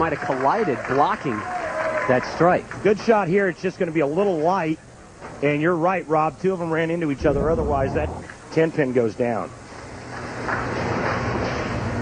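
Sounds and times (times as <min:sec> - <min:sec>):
steady low rumble: 0:06.8 - 0:08.8.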